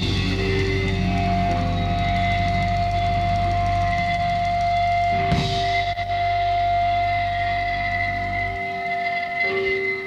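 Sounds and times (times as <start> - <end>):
steady low drone: 0.0 - 10.0
sustained rock band chord: 0.0 - 10.0.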